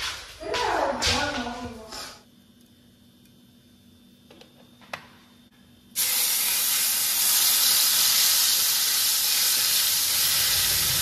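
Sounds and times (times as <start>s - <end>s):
chillies sizzling in hot oil: 6.0s - 11.0s.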